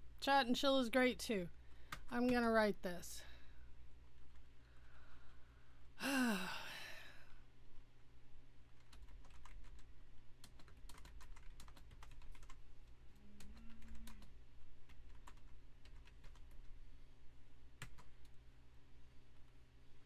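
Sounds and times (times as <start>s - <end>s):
typing on keyboard: 8.8s - 12.6s, 13.4s - 16.7s, 17.8s - 18.4s
low hum: 12.6s - 15.9s.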